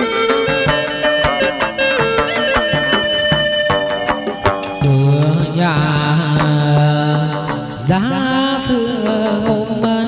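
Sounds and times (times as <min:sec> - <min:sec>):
instrumental accompaniment: 0:00.0 - 0:10.0
person singing long notes: 0:04.7 - 0:10.0.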